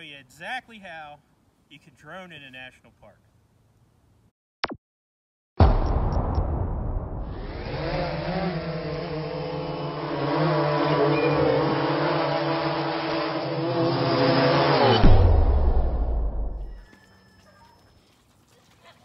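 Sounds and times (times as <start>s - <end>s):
deep boom with low rumble: 5.6s - 7.7s, 15.0s - 16.8s
buzzing hum of several tones: 7.2s - 16.8s.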